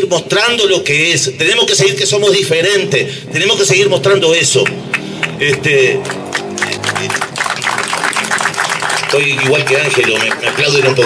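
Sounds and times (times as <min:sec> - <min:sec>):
crowd applauding: 0:04.6 - 0:11.0.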